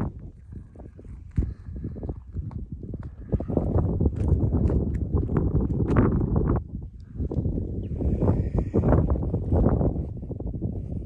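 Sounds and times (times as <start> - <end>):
footsteps on rock and gravel: 0.0 - 6.6
wind rumble on microphone: 0.0 - 11.0.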